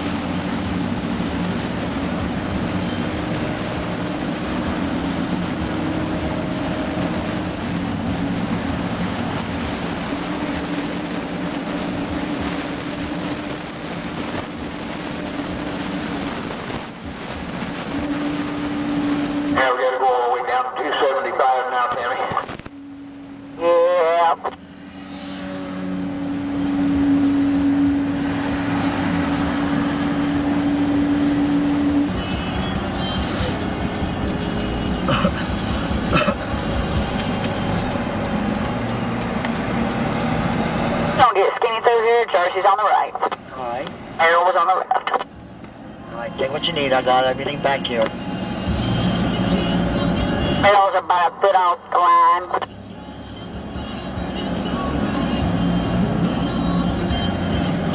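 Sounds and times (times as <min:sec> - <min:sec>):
car road noise: 0:00.0 - 0:57.9.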